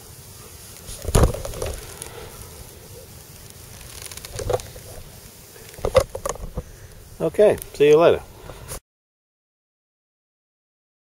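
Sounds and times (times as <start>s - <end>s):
soft rustling: 0.0s - 8.8s.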